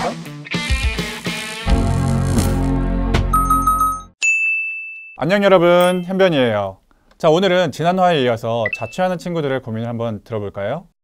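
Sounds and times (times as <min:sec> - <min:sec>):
background guitar music: 0:00.0 - 0:03.9
bright sound-effect ding: 0:05.8 - 0:06.1
high chime notes: 0:05.8 - 0:06.2.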